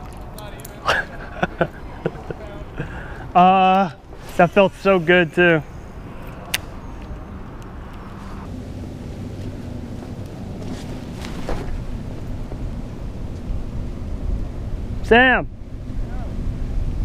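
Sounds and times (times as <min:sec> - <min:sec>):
low outdoor rumble: 0:00.0 - 0:17.0.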